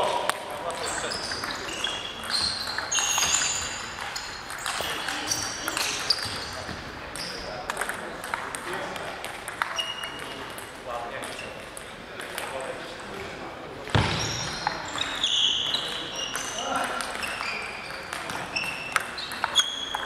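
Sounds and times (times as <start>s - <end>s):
table tennis balls clicking: 0.2s - 12.8s, 15.8s - 20.0s
short high squeaks: 0.8s - 6.6s, 14.2s - 20.0s.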